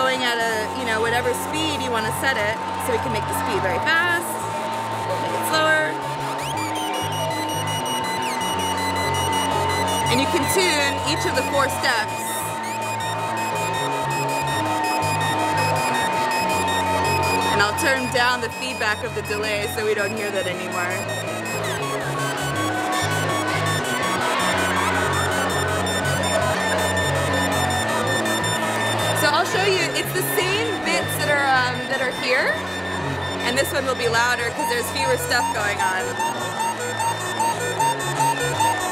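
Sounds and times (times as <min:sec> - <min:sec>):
buzzy low synth notes: 0:00.0 - 0:38.9
fast ticking gliding sounds: 0:00.0 - 0:38.9
steady high synth tone: 0:00.0 - 0:38.9.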